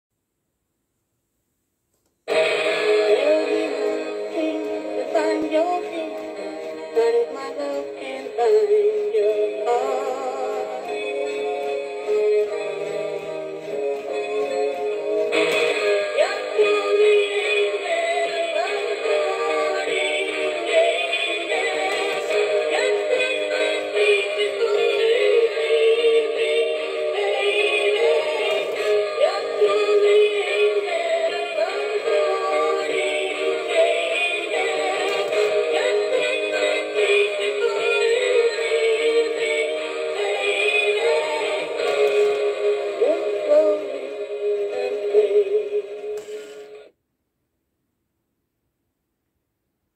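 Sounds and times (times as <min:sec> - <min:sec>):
tinny recorded singing with music: 0:02.2 - 0:46.9.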